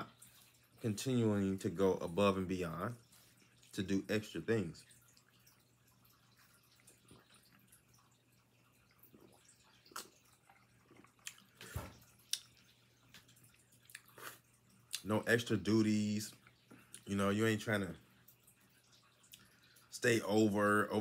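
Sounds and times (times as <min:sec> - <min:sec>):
sipping and swallowing: 0:04.9 - 0:15.3, 0:16.3 - 0:17.1, 0:18.1 - 0:19.9.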